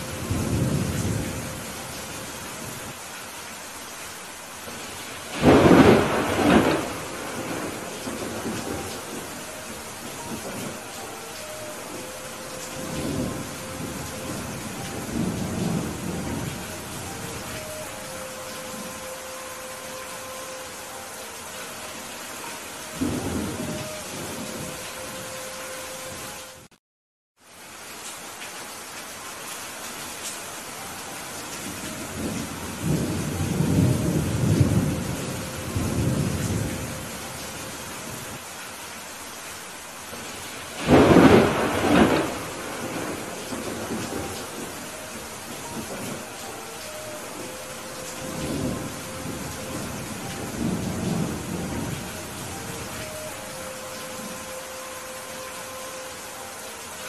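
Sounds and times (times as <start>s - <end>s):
thunder rumbling: 0.0s - 2.9s, 4.7s - 20.4s, 22.9s - 25.4s, 31.6s - 38.3s, 40.1s - 55.5s
heavy rain falling: 0.0s - 26.7s, 27.4s - 57.0s.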